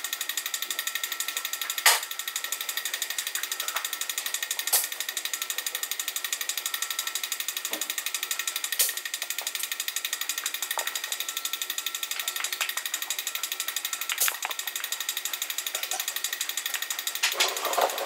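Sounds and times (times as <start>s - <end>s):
pulsing mechanical buzz: 0.0s - 18.0s.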